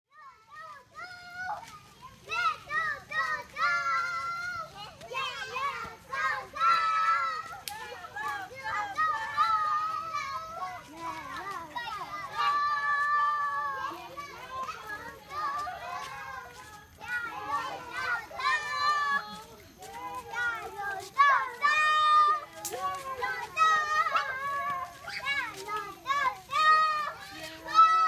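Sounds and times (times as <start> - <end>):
young children chattering: 1.1 - 28.0.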